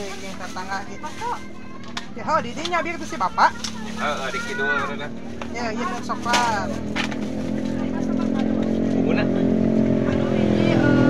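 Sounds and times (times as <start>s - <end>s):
motorcycle engine running: 0.0s - 11.0s
people talking: 0.0s - 11.0s.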